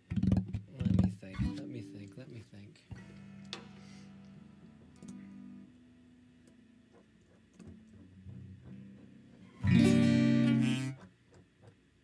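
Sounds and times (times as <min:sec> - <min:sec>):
acoustic guitar picking: 0:03.0 - 0:11.2.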